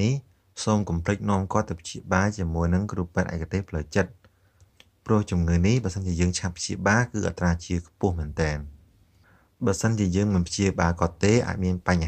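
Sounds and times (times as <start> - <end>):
narrator speaking: 0.0 - 4.2, 5.0 - 8.8, 9.6 - 12.0.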